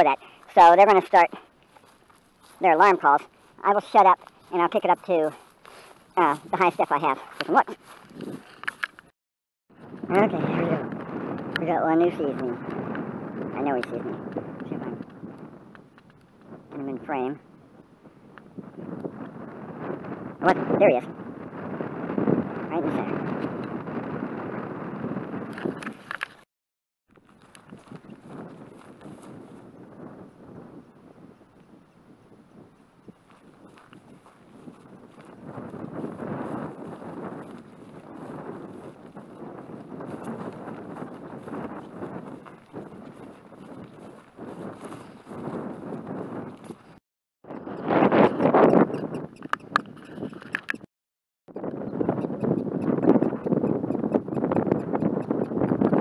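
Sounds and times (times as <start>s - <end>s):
wind buffeting microphone: 0.0s - 9.1s, 9.7s - 26.4s, 27.2s - 50.9s, 51.5s - 56.0s
footsteps through dry grass: 0.2s - 9.1s, 27.2s - 29.7s, 33.1s - 47.0s.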